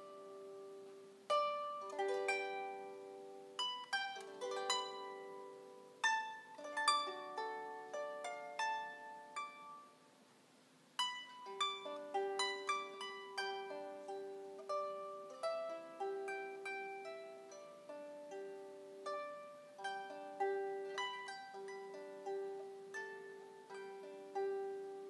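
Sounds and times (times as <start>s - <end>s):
solo harp melody: 0.0s - 10.1s, 11.0s - 25.0s.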